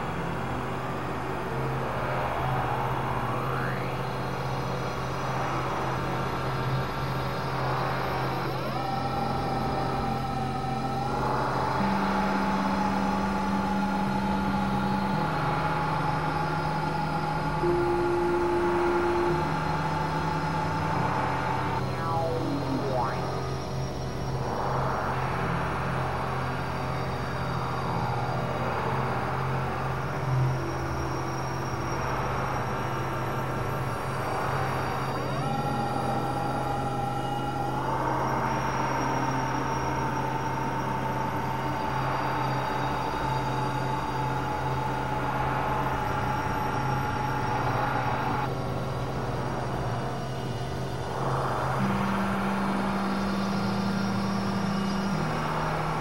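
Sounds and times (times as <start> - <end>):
low synthesizer drone: 0.0 - 56.0
lower held synth notes: 7.5 - 25.5
held higher synth tone: 21.8 - 23.6.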